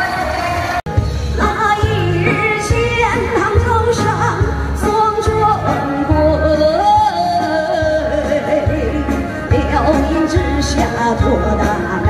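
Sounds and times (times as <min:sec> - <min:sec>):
woman singing into microphone: 0:00.0 - 0:12.0
music with steady bass beat: 0:00.9 - 0:12.0.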